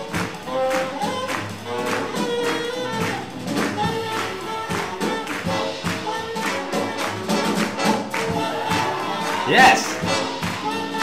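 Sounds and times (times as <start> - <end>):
swing jazz band playing: 0.0 - 11.0.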